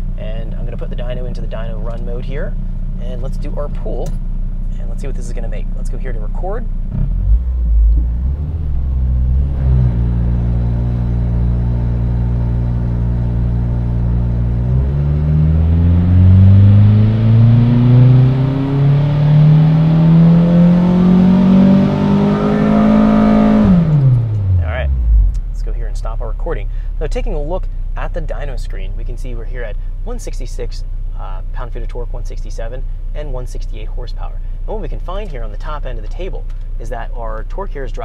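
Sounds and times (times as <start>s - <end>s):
car engine revving on dyno: 6.9s - 25.4s.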